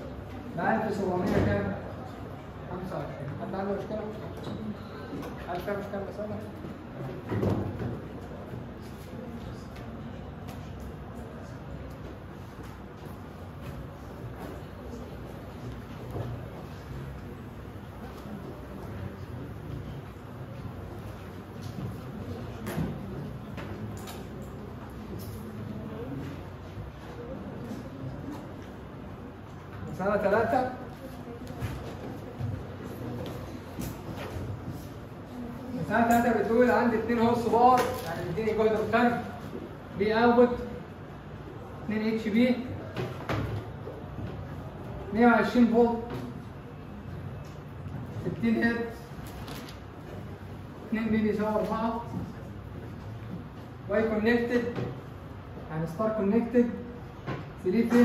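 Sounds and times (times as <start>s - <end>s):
faint room noise: 0.0s - 58.0s.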